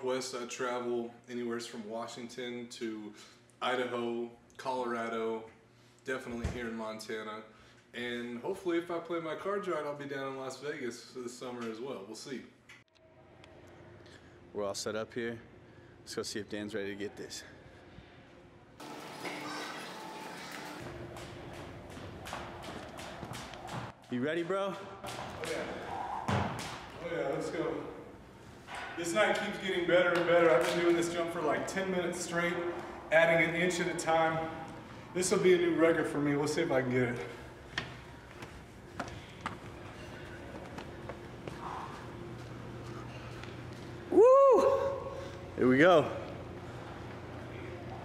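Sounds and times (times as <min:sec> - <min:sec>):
low room hum: 0:00.0 - 0:48.0
jump rope and feet tapping: 0:20.8 - 0:27.0
sharp footsteps: 0:20.8 - 0:27.1.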